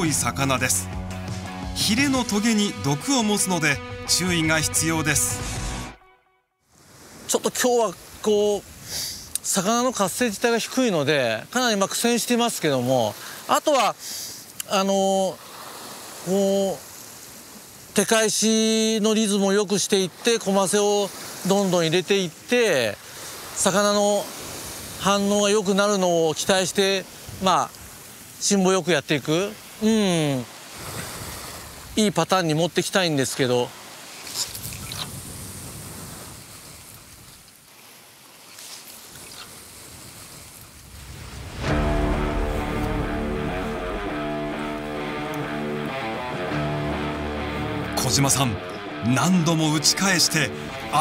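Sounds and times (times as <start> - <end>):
man saying uh: 1.8 - 5.4, 29.2 - 30.5, 47.8 - 51.0
sea surf on rocky shore: 6.7 - 51.0
waves washing against rocks: 19.3 - 29.8, 35.1 - 44.0
wind noise: 34.4 - 37.4, 39.1 - 46.0.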